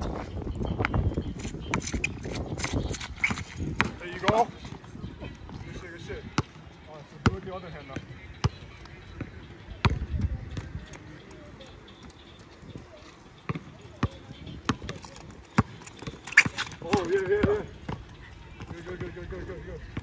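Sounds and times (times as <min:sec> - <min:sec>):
basketball bouncing on brick: 0:01.7 - 0:04.4, 0:13.5 - 0:18.0.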